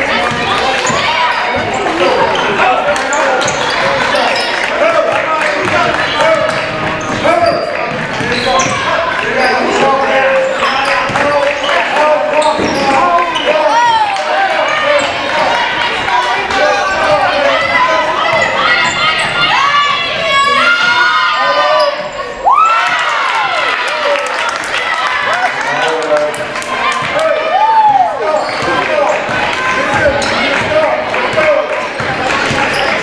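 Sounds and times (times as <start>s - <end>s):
overlapping voices: 0.0s - 21.9s, 22.5s - 33.0s.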